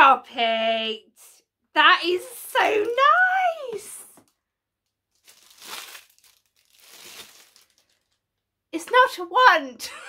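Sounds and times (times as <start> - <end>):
packaging crinkling: 5.0 - 8.4.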